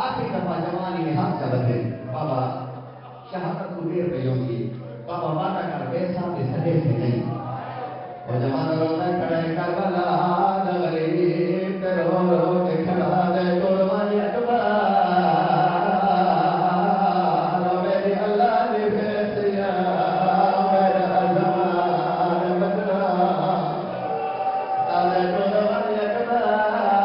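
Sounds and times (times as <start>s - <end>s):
man chanting into microphone: 0.0s - 27.0s.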